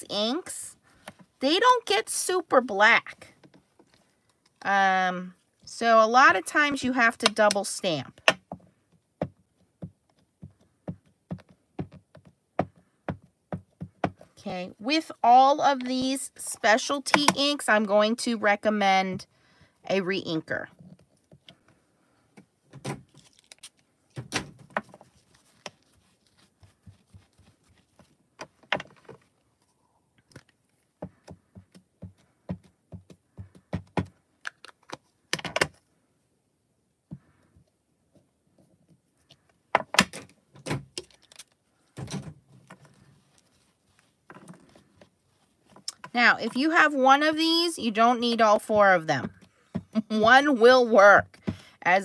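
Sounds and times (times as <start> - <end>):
plastic cases clicking open and shut: 34.4 - 35.8, 39.8 - 42.9.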